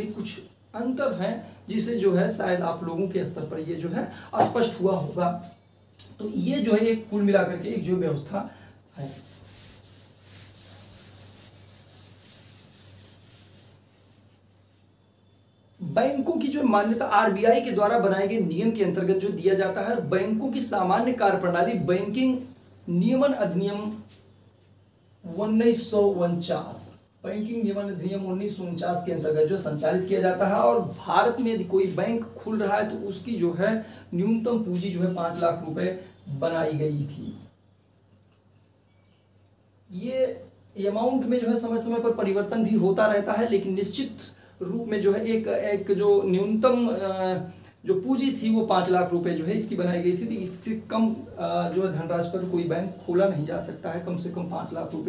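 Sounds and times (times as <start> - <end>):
duster rubbing on whiteboard: 9.0 - 15.1, 37.8 - 40.1
marker pen writing on whiteboard: 37.8 - 39.9.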